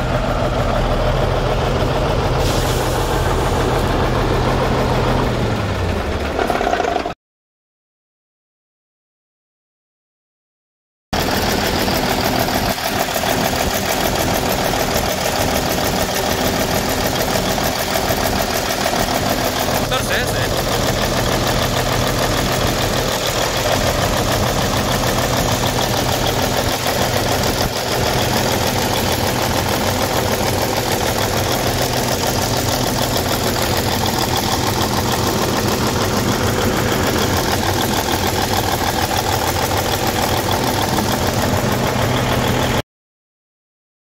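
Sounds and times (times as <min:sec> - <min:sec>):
diesel truck engine idling: 0:00.0 - 0:06.6, 0:11.2 - 0:42.8.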